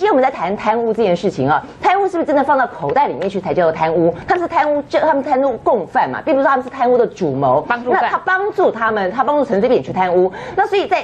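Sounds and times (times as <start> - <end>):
woman talking: 0.0 - 11.0.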